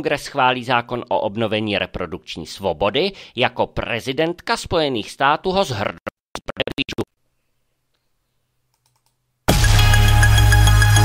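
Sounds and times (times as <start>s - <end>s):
record scratch: 5.8s - 7.2s.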